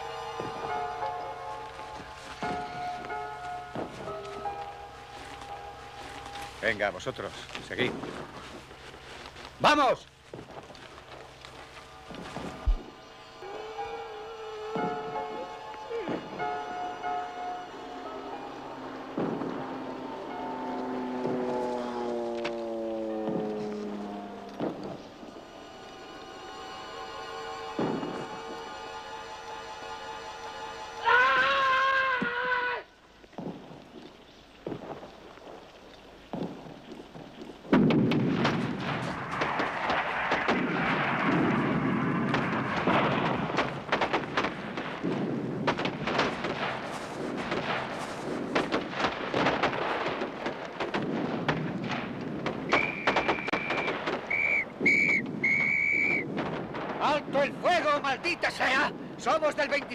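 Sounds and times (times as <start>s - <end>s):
held musical chord: 0.0s - 31.1s
wavering tone: 10.9s - 31.1s
booms and rapid cracks: 19.2s - 19.7s, 36.3s - 59.9s.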